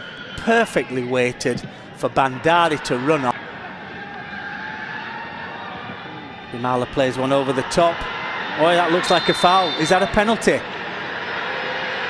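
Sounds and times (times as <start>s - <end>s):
stadium crowd hum: 0.0s - 12.0s.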